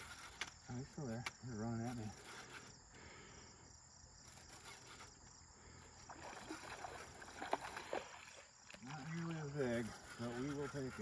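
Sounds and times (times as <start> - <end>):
crickets chirping: 0.0 - 11.0
water splashing: 6.0 - 10.7.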